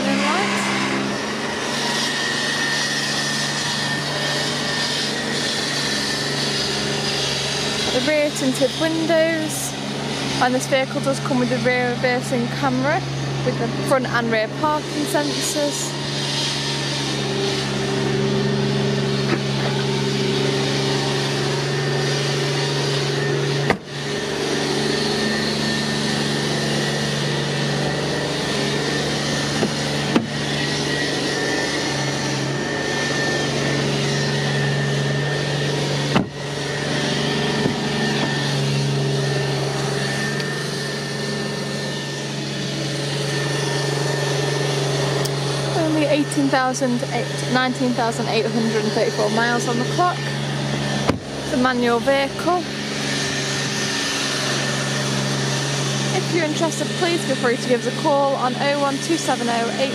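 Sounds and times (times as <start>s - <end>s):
rushing noise: 0.0s - 5.3s
steady machine hum: 0.0s - 59.9s.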